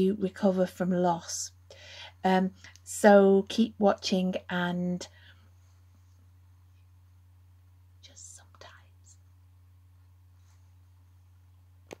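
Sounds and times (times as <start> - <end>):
faint low hum: 0.0 - 12.0
woman whispering shh: 8.0 - 9.2.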